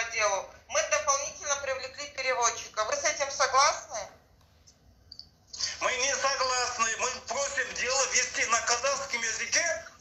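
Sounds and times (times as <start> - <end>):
man speaking over phone speaker: 5.5 - 10.0.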